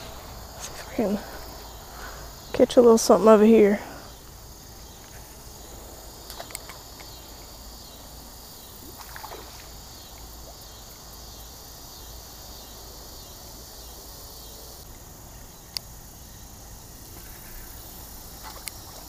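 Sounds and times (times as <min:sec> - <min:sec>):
crickets chirring: 0:00.0 - 0:19.0.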